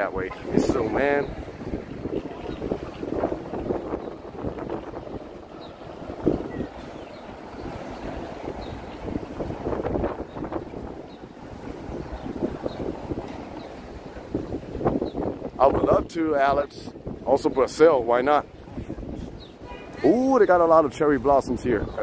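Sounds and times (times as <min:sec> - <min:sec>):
city street noise: 0:00.0 - 0:22.0
wind rumbling on microphone: 0:00.0 - 0:22.0.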